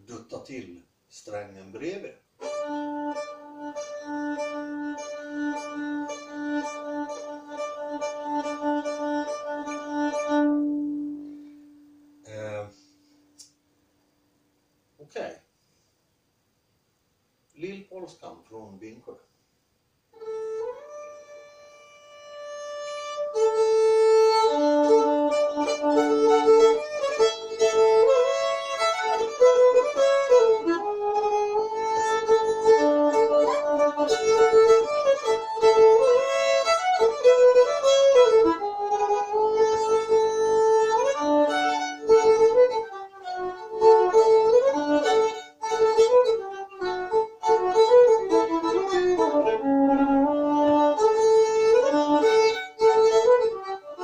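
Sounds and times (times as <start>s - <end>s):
solo violin folk dance tune: 1.3s - 12.5s, 20.1s - 54.0s.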